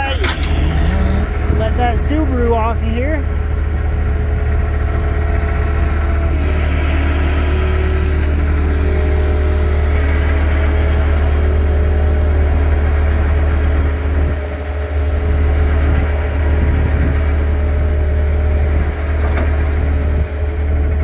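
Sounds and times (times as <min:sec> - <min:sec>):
truck engine droning: 0:00.0 - 0:21.0.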